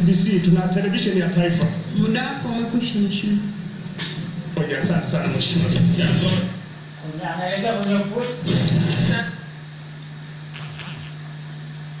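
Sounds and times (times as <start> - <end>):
steady low room hum: 0.0 - 12.0.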